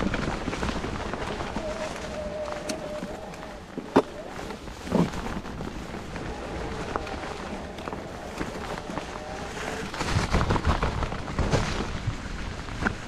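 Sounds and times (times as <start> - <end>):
bike rattling and knocking over rocks: 0.0 - 13.0
bike tyres rolling over dry leaves: 0.0 - 13.0.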